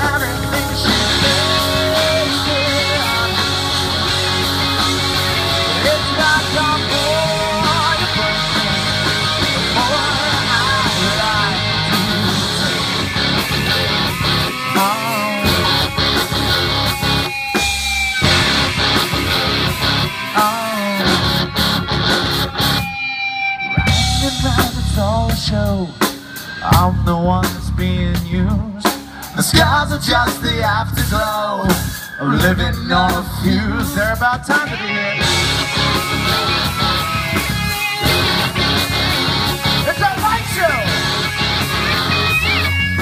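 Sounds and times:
bass guitar: 0.0s - 43.0s
drum kit: 0.0s - 43.0s
electric guitars: 0.0s - 43.0s
rock band playing: 0.0s - 43.0s.

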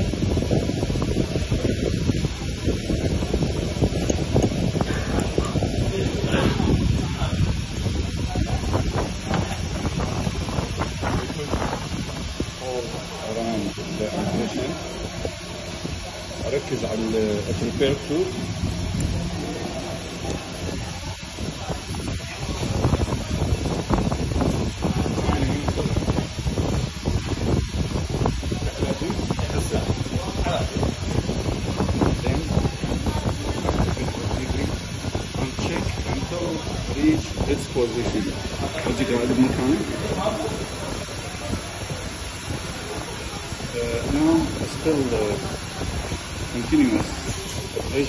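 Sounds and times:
hissing noise with crackling: 0.0s - 48.0s.

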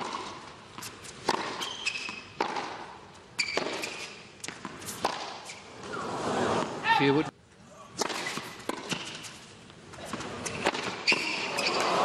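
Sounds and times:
tennis ball struck by racquets: 0.0s - 5.4s, 8.0s - 9.3s, 10.0s - 12.0s
tennis ball bouncing on hard court: 0.0s - 5.5s, 8.0s - 9.3s, 10.0s - 12.0s.

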